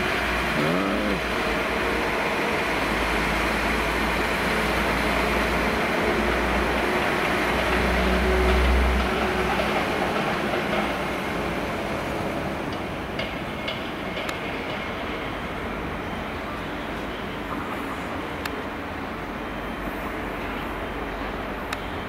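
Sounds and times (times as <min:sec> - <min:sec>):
diesel train rumbling past: 0:00.0 - 0:22.0.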